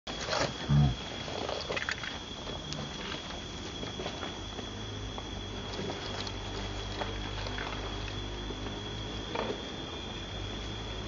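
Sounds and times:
monkey grunt: 0.6 - 1.0.

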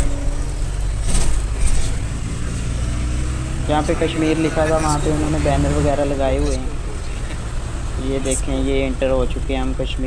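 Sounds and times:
van engine and tyres rumble: 0.0 - 10.0.

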